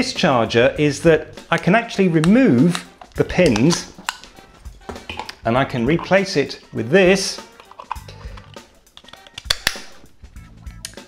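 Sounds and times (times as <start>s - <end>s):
plug snapping onto charger: 7.5s - 9.9s.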